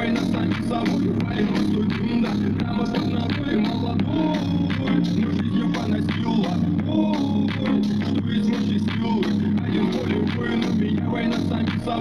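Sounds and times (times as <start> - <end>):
drum beat: 0.0 - 12.0
heavy pulsing bass note: 0.0 - 12.0
song from portable speaker: 0.0 - 12.0.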